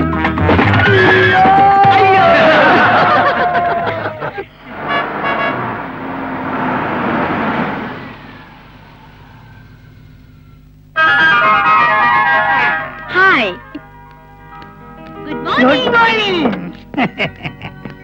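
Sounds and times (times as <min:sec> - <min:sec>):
car engine and tyres: 0:04.5 - 0:10.9
film background music: 0:11.8 - 0:16.9.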